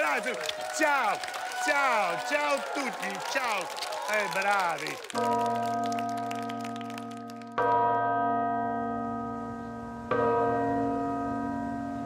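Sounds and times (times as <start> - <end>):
tower clock bell striking: 5.2 - 12.0.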